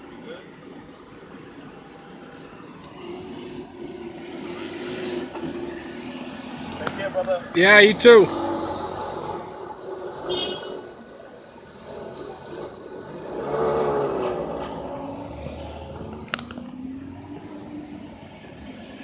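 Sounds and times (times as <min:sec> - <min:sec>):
car engine pulling away: 0:00.8 - 0:19.0.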